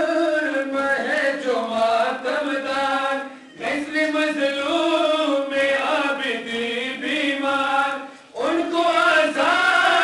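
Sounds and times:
men chanting a mourning lament: 0:00.0 - 0:10.0.

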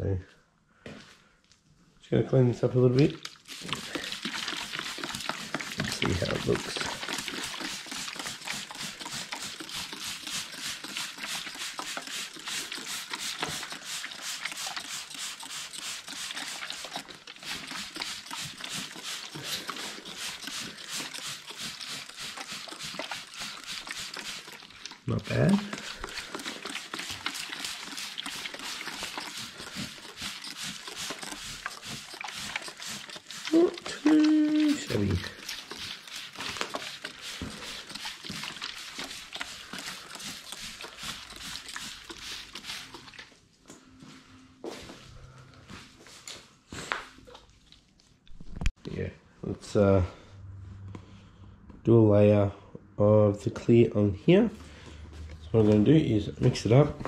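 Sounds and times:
spray bottle spritzing: 0:02.9 - 0:43.4.

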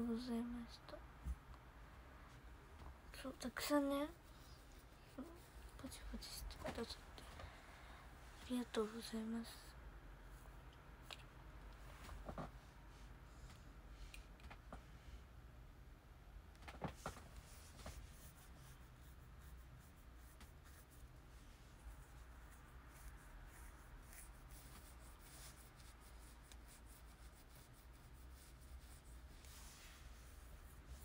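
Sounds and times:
faint room hum: 0:00.0 - 0:31.0
scratching and rubbing on microphone: 0:16.8 - 0:31.0.

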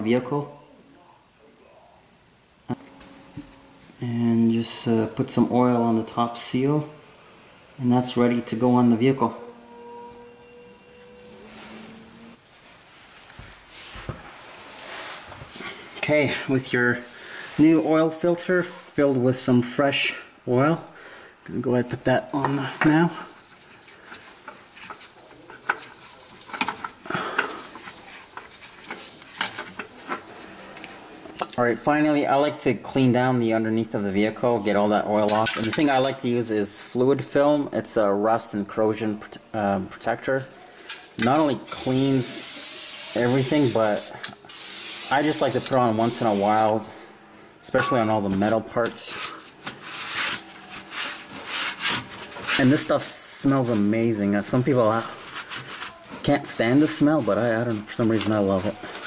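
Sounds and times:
cloth rag wiping metal: 0:41.7 - 0:46.8, 0:48.3 - 0:53.1, 0:54.6 - 0:59.0.

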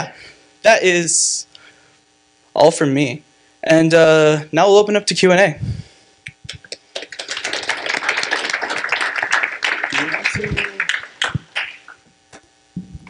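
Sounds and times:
audience applauding: 0:06.5 - 0:12.0.

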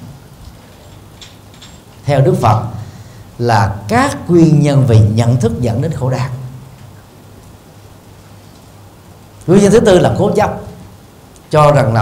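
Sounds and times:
low room noise hiss: 0:00.0 - 0:12.0.

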